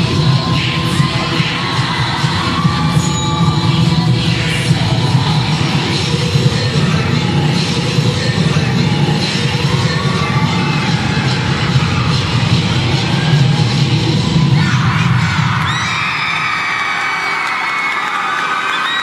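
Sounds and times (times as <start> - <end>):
crowd cheering and screaming: 0.0 - 6.1, 8.8 - 19.0
dance music with heavy bass: 0.0 - 15.7.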